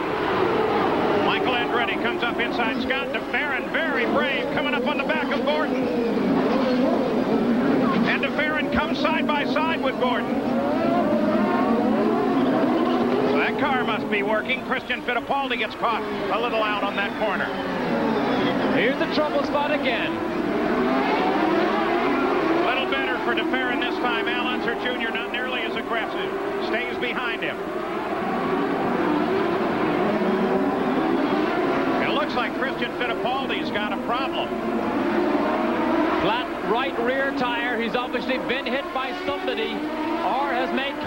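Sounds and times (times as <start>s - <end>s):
race car engines: 0.0s - 41.0s.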